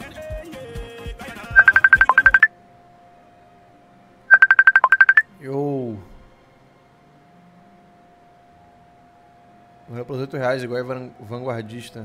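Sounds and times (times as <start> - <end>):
phone ringtone trill: 1.6 - 2.5, 4.3 - 5.2
faint steady tone: 1.6 - 12.0.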